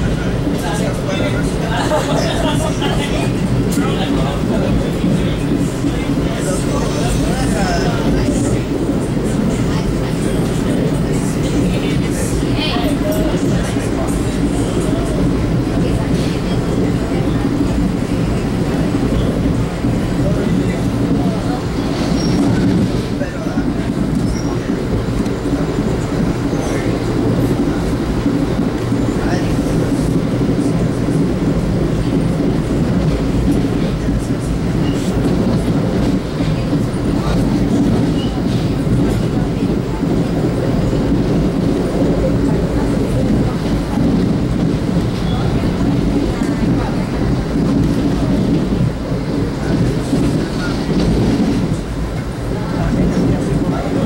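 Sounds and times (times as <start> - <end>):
train low rumble and rail noise: 0.0 - 54.0
wheels clicking on track: 0.0 - 54.0.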